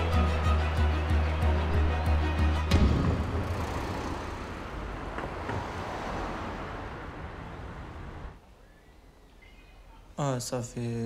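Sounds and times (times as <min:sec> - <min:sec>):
car passing close by: 0:02.8 - 0:08.4
quiet street ambience: 0:02.9 - 0:11.0.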